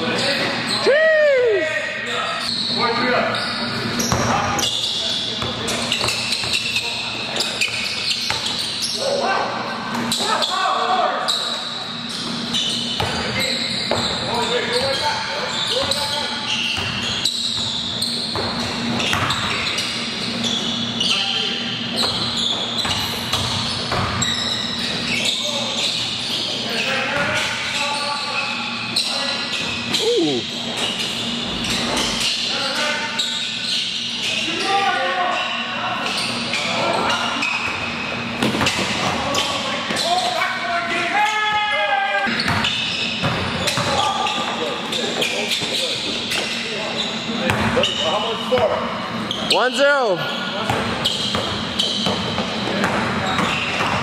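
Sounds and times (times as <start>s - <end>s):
basketball bouncing on gym floor: 7.6s - 8.6s, 13.0s - 14.2s, 15.8s - 19.8s, 22.0s - 24.3s, 42.4s - 44.6s, 47.5s - 47.9s, 50.6s - 54.0s
players calling out: 28.4s - 30.6s.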